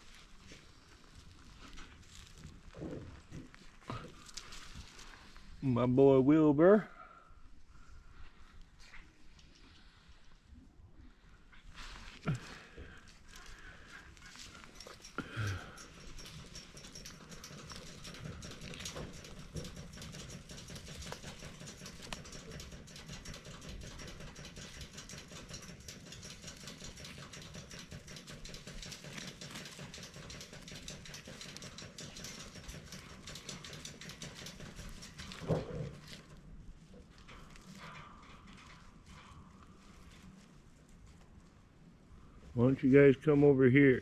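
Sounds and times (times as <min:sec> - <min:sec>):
turkeys walking on dry leaves: 0:00.0 - 0:05.6.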